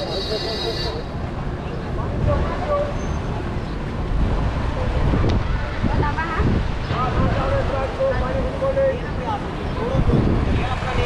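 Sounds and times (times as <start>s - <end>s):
passers-by talking: 0.0s - 11.0s
road traffic rumble: 0.0s - 11.0s.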